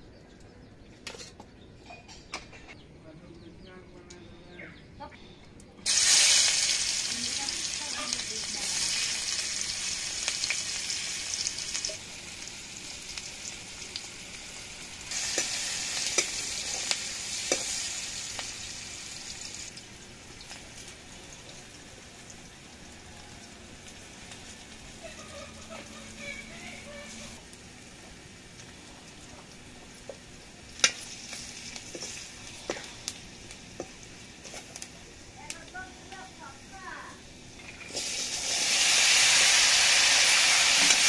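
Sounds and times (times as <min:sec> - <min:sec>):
onions sizzling in hot oil: 0:05.8 - 0:41.0.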